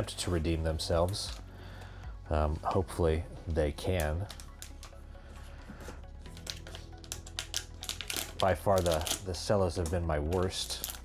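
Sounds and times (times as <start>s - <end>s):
quiet background music: 0.0s - 11.0s
plastic wrapper crinkling: 3.8s - 5.0s, 6.2s - 11.0s
tear strip crackling: 6.3s - 11.0s.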